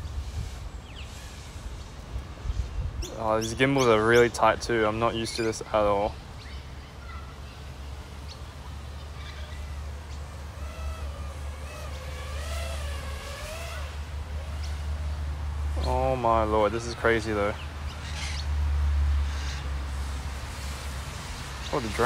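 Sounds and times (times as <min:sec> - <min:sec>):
faint drone motor whine: 0:06.2 - 0:22.0.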